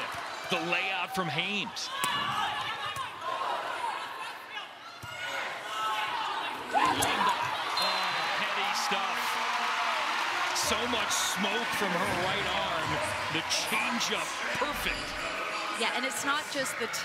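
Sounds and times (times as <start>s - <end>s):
arena crowd cheering: 0.0s - 17.0s.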